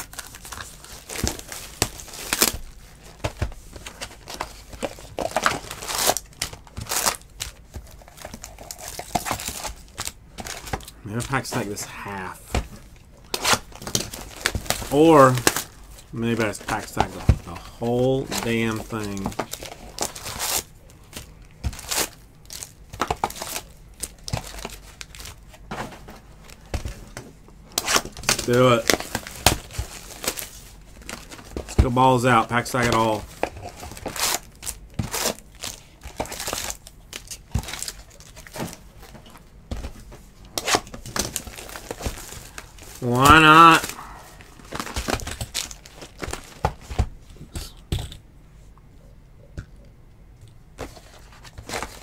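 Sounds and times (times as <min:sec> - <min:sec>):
foil wrappers crinkling: 0:00.0 - 0:47.7, 0:50.8 - 0:52.0.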